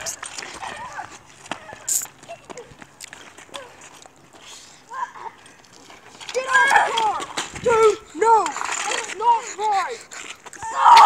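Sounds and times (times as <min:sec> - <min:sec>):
footsteps scuffing on asphalt: 0:00.0 - 0:07.6.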